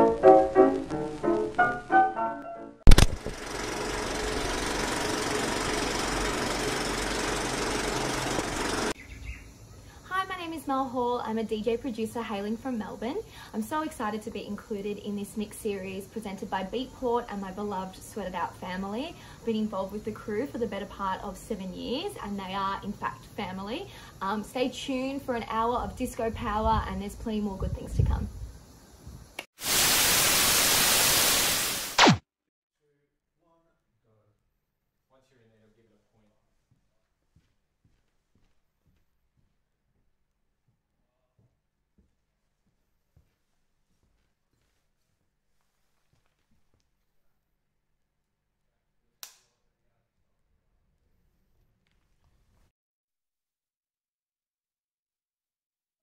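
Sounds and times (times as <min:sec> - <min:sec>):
projector click: 0:02.9 - 0:03.4
film projector clattering: 0:02.9 - 0:09.0
loud white-noise hiss: 0:10.0 - 0:32.2.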